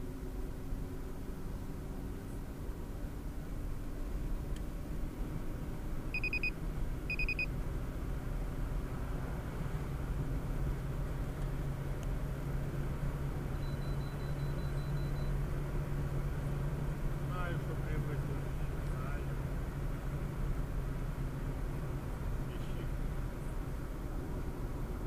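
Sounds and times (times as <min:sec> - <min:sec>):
car engine and road hum: 0:00.0 - 0:25.0
short electronic beeps: 0:06.1 - 0:07.5, 0:13.5 - 0:15.4.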